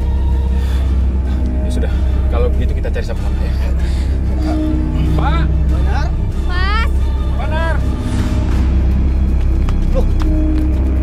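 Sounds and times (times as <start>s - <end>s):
dramatic low drone score: 0.0s - 11.0s.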